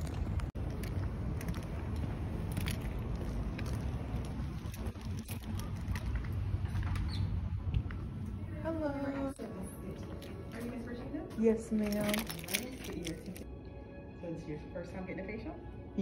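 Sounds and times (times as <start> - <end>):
footsteps on pavement: 0.1 - 8.4.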